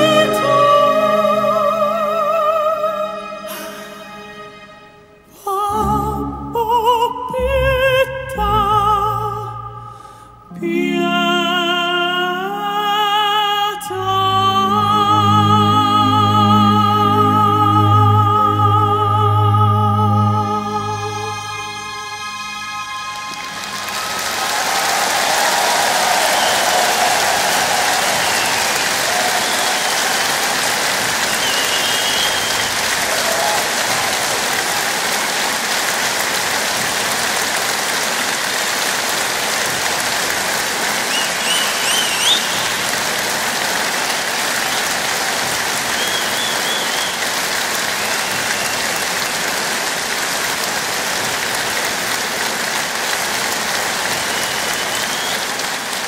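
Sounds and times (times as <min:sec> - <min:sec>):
audience applauding: 0:00.0 - 0:03.8, 0:21.6 - 0:56.0
whistles and cheers: 0:23.1 - 0:35.4, 0:41.0 - 0:43.3, 0:43.9 - 0:49.7, 0:54.0 - 0:56.0.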